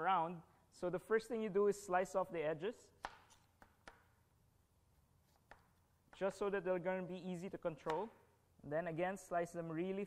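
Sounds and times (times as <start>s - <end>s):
knife cutting onto cutting board: 3.0s - 3.7s.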